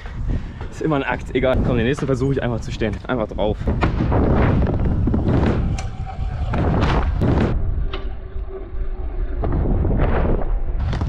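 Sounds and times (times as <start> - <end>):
wind rumble on microphone: 0.0 - 11.0.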